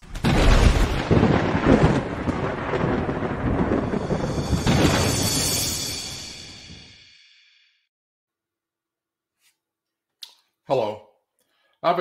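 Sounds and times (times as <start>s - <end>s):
rolling thunder rumble: 0.0s - 6.9s.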